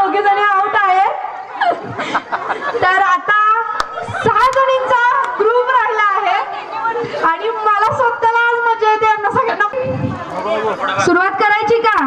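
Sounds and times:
woman calling through loudspeaker: 0:00.0 - 0:01.4, 0:02.8 - 0:10.1, 0:11.0 - 0:12.0.

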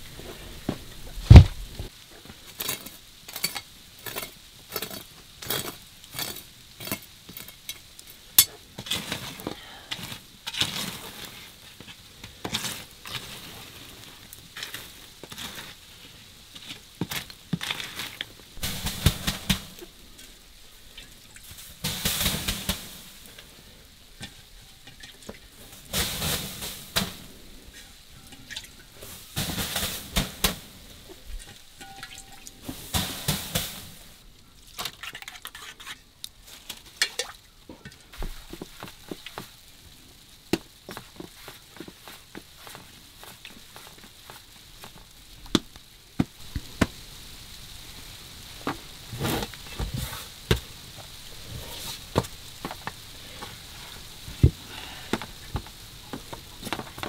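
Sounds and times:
embers scraped over hearth: 0:00.0 - 0:37.1, 0:38.1 - 0:57.0.

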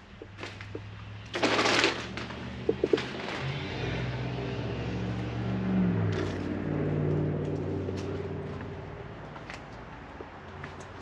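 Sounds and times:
vehicle engine hum: 0:00.0 - 0:11.0.

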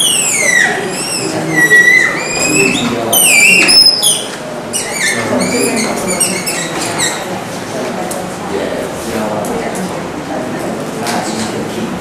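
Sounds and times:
marker squeaking on whiteboard: 0:00.0 - 0:07.4.

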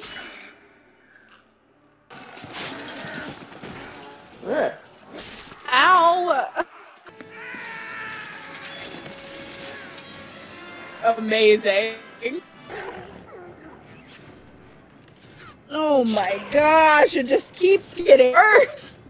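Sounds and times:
clashing and crashes: 0:02.1 - 0:06.2, 0:07.0 - 0:10.8
orchestral music: 0:07.0 - 0:13.8.

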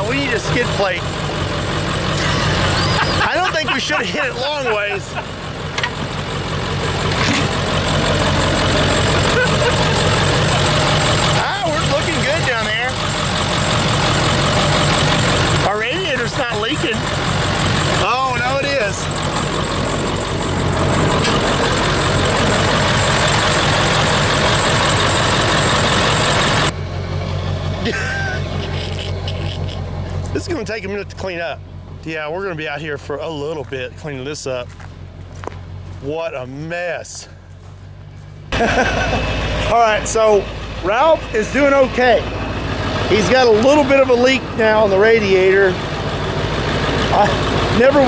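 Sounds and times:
diesel engine idling: 0:00.0 - 0:48.0.

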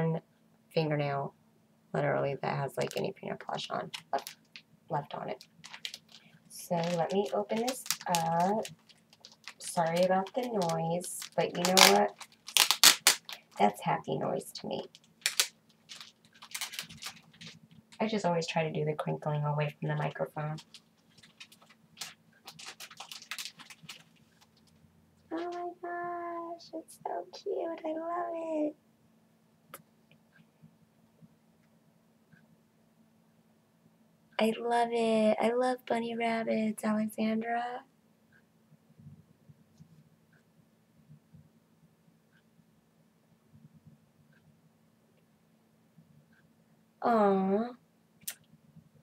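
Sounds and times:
packaging crinkling: 0:02.8 - 0:13.8, 0:14.7 - 0:18.1, 0:19.9 - 0:24.8.

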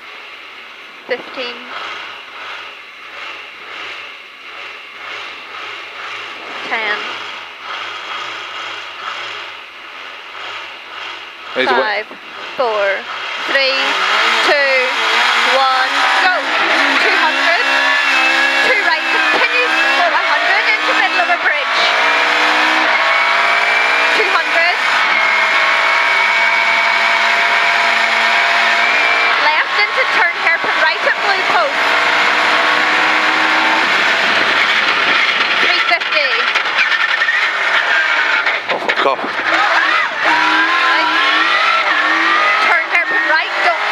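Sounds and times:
rally car engine at full throttle: 0:00.0 - 0:43.9.

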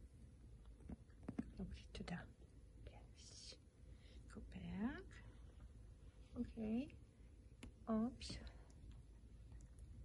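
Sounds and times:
person whispering: 0:02.0 - 0:03.6.

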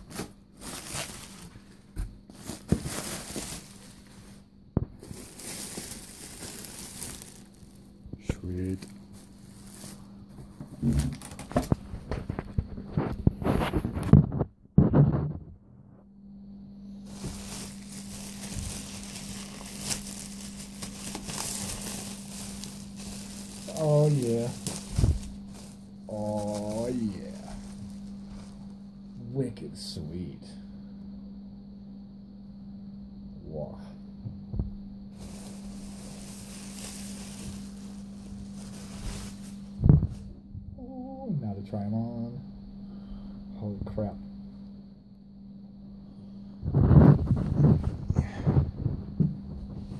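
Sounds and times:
plastic bag crinkling: 0:00.0 - 0:07.9, 0:08.6 - 0:14.0, 0:17.0 - 0:28.7, 0:35.2 - 0:39.8
steady low hum: 0:00.0 - 0:49.9.

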